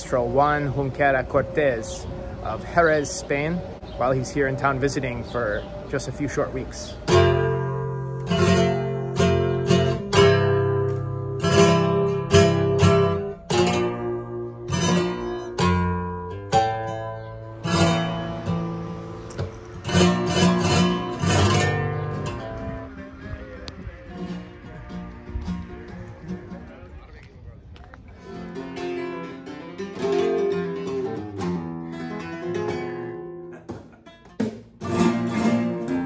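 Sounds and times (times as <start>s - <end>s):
flamenco guitar playing: 7.0s - 27.0s, 28.1s - 36.0s.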